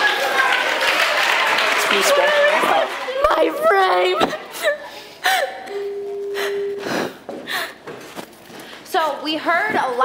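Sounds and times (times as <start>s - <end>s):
steady held tone: 5.6s - 7.4s.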